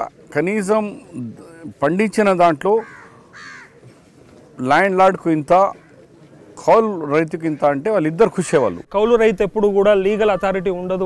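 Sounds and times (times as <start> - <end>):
man speaking: 0.0 - 2.8, 6.6 - 11.0
crow cawing: 2.8 - 3.9, 5.7 - 6.1, 10.0 - 10.9.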